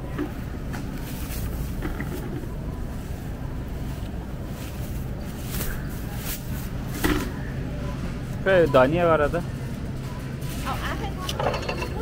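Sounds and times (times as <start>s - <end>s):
shopping cart wheels rumbling: 0.0s - 7.4s.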